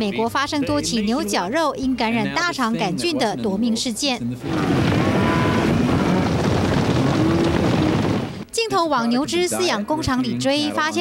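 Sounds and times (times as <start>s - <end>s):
wind buffeting microphone: 4.4s - 8.4s.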